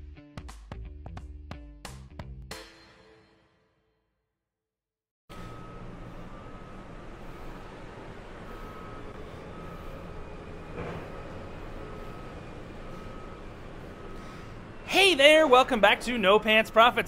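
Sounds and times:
reversing alarm beeping: 5.3 - 17.0.

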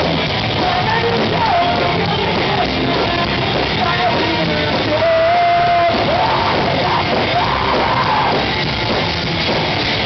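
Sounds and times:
live rock band: 0.0 - 10.0.

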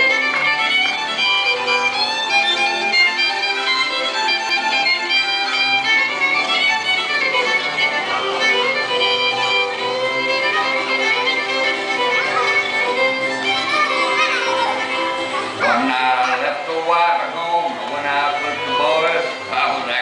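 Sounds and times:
country fiddle playing: 0.0 - 20.0
bass notes: 14.4 - 18.8.

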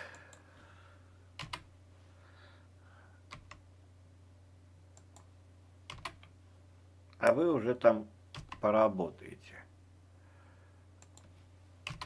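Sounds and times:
computer keyboard keystrokes: 1.4 - 1.7, 3.3 - 3.6, 5.9 - 6.3, 8.4 - 8.6, 11.0 - 12.0.

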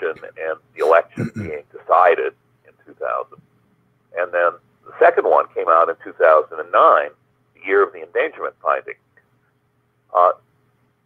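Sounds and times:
man saying uh: 0.0 - 1.6
faint steady hum: 0.0 - 11.0.

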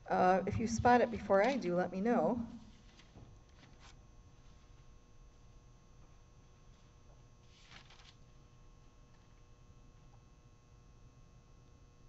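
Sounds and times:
book pages turning: 2.6 - 4.0, 7.4 - 8.3.

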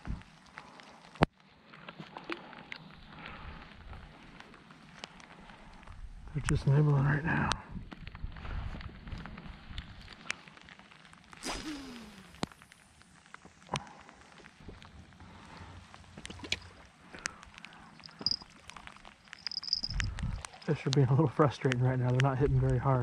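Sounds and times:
fishing line swish: 11.4 - 12.5
small reel clicks: 19.2 - 21.0.

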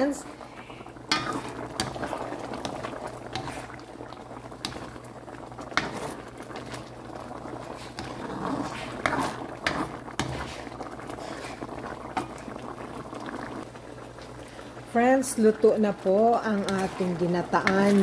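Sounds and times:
liquid bubbling in a pan: 0.0 - 18.0.

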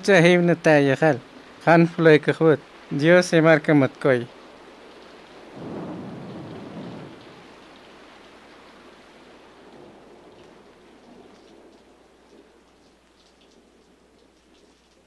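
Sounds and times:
rain-like hiss: 0.0 - 15.0
low rumble: 5.6 - 7.6
faint light ticks: 10.2 - 15.0.

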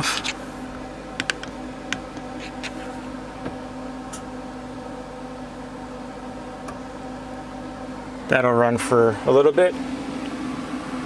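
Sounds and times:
blower fan humming: 0.0 - 11.0.

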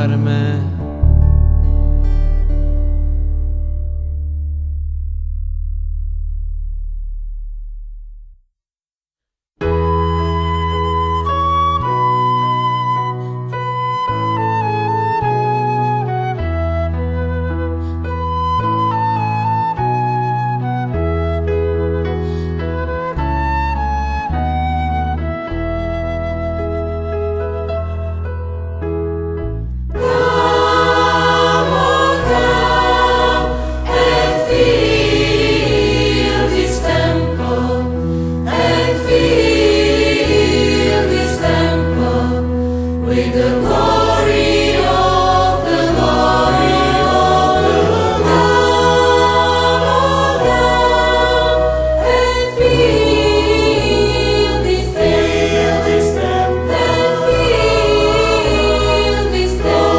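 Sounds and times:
sustained low accompaniment: 0.0 - 8.5
church choir singing: 30.0 - 59.9.

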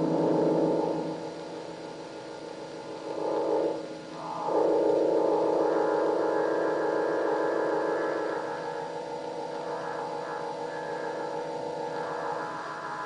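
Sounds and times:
droning film music chords: 0.0 - 13.0.

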